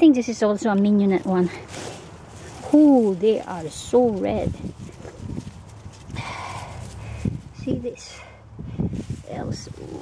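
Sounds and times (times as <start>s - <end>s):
rustling of leaves: 0.0s - 10.0s.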